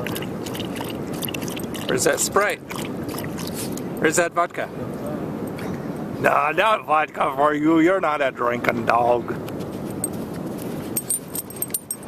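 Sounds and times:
collar tags jingling: 0:10.8 - 0:12.0.

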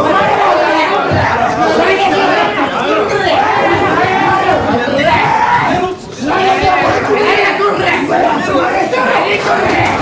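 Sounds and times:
men shouting over one another: 0:00.0 - 0:10.0.

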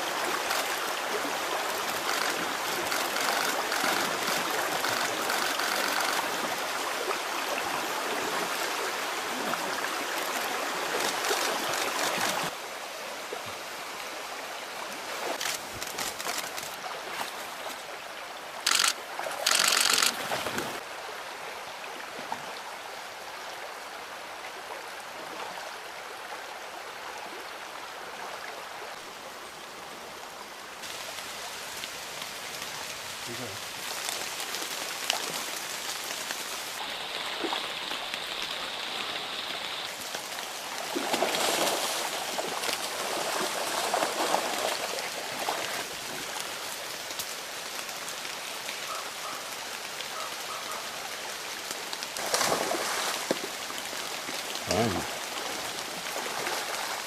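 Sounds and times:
rocky stream running: 0:00.0 - 0:57.0
bear splashing in water: 0:40.7 - 0:46.5, 0:52.1 - 0:57.0.

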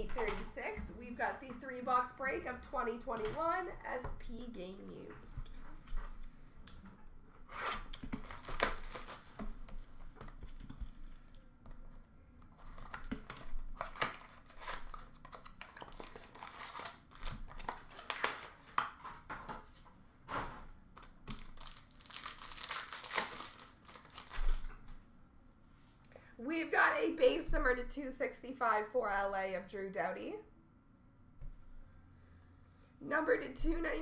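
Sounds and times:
card wrappers crinkling: 0:08.0 - 0:09.5, 0:12.6 - 0:18.8, 0:21.0 - 0:24.7.

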